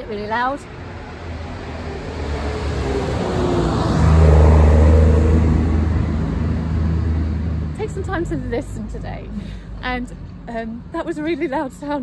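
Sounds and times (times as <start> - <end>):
tractor engine passing: 0.3 - 9.1.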